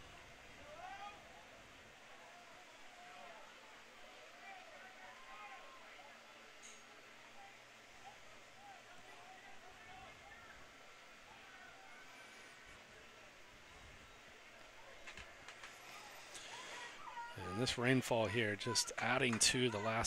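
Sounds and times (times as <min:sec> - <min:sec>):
distant indistinct voices: 0:00.0 - 0:20.0
steady low hiss: 0:00.0 - 0:20.0.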